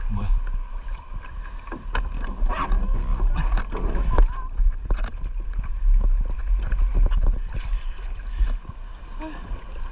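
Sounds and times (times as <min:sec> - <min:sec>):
water lapping against kayak: 0:00.0 - 0:09.9
wind rumble on microphone: 0:00.0 - 0:09.9.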